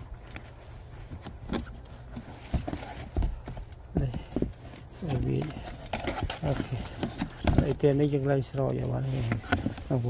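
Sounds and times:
person speaking: 0:03.9 - 0:10.0
plastic tray clattering: 0:04.0 - 0:08.1.

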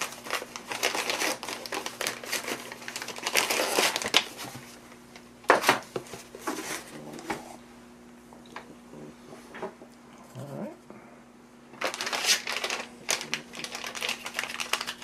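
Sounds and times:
plastic bag crinkling: 0:00.0 - 0:04.8, 0:11.8 - 0:15.0.

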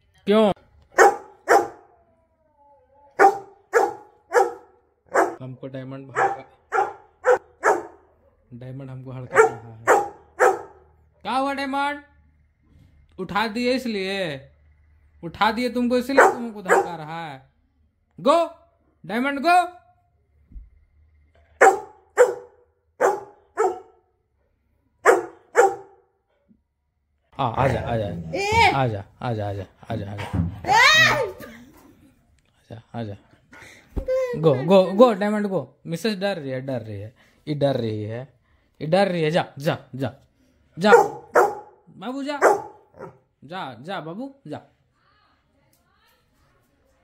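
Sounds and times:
dog barking: 0:00.9 - 0:02.0, 0:03.1 - 0:05.4, 0:06.1 - 0:08.4, 0:09.3 - 0:10.9, 0:16.1 - 0:17.1, 0:21.6 - 0:24.0, 0:25.0 - 0:26.1, 0:40.8 - 0:43.2.

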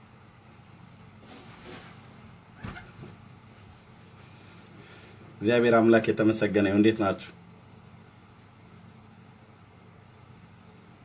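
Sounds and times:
low room hum: 0:00.0 - 0:11.0
person shifting in seat: 0:01.2 - 0:03.2.

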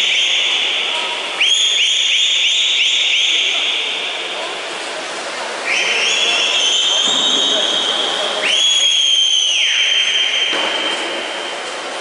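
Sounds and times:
short high whistle blasts: 0:00.0 - 0:04.1, 0:05.6 - 0:11.5.

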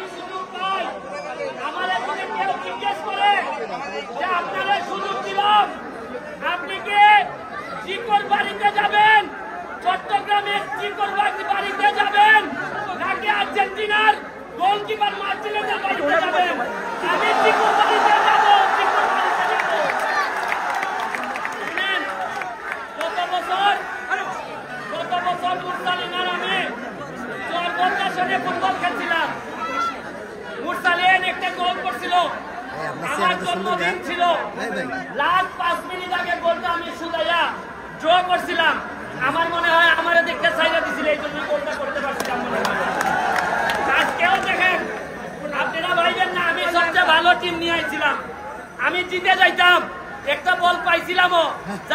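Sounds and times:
crowd chatter: 0:00.0 - 0:51.9
man talking into a microphone: 0:30.6 - 0:42.8, 0:43.8 - 0:51.9.

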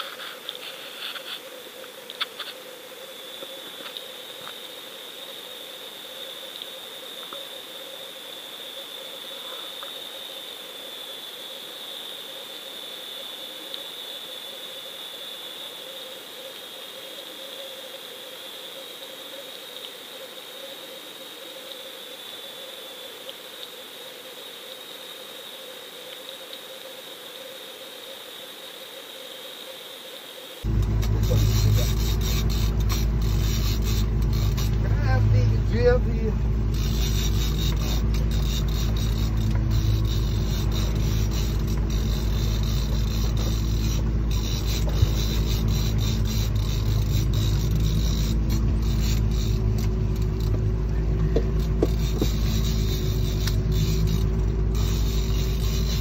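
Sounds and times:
steady high whine: 0:29.3 - 0:56.0
low hum: 0:30.6 - 0:56.0
outboard motor running: 0:30.6 - 0:56.0.

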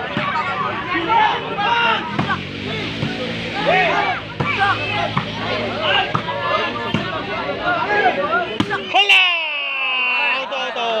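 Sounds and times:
crowd shouting and chattering: 0:00.0 - 0:11.0.

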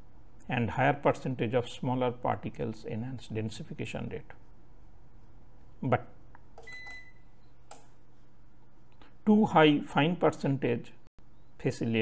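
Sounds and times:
low background hum and hiss: 0:00.0 - 0:12.0.

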